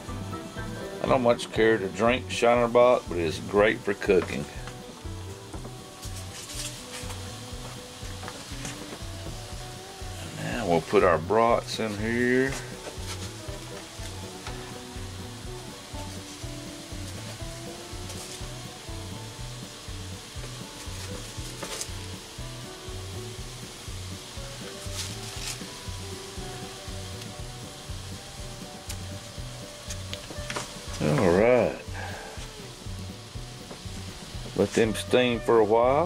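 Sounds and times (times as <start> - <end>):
sizzling in a skillet: 0.0 - 36.0.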